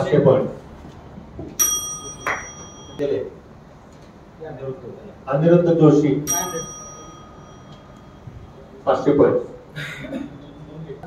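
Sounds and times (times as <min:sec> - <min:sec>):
bell ringing: 0:01.6 - 0:03.2, 0:06.2 - 0:08.8.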